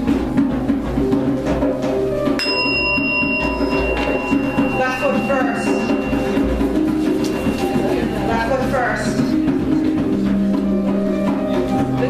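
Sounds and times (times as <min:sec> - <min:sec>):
ceremonial music: 0:00.0 - 0:12.0
steady drum beat: 0:00.0 - 0:12.0
small bell ringing: 0:02.4 - 0:08.7.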